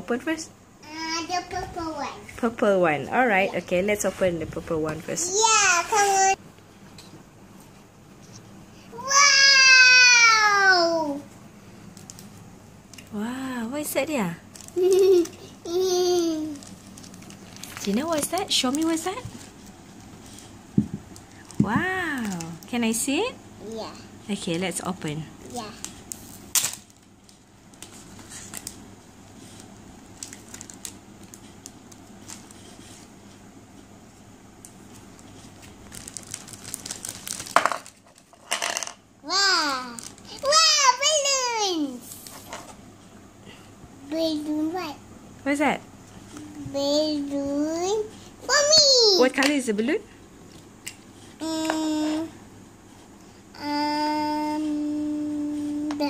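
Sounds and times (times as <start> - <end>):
woman speaking: 0.0 - 0.6, 2.3 - 5.3, 13.1 - 14.4, 17.8 - 19.3, 21.5 - 23.4, 24.2 - 25.4, 45.4 - 45.9, 49.2 - 50.1
plastic bag crinkling: 14.4 - 15.3, 15.9 - 22.8, 25.5 - 33.1, 34.8 - 38.8, 39.6 - 40.8.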